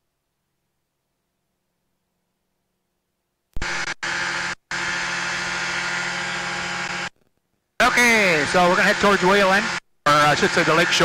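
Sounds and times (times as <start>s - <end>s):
aircraft engine and propeller drone: 4.0s - 7.1s, 7.8s - 11.0s.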